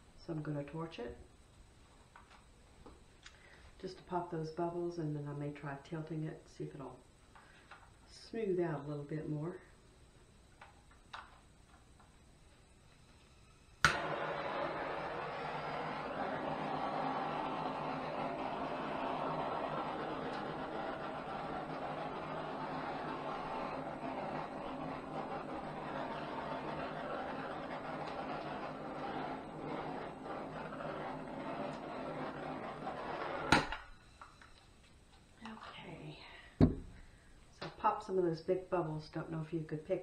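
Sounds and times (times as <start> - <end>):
gas torch flame hissing: 13.3 - 33.8.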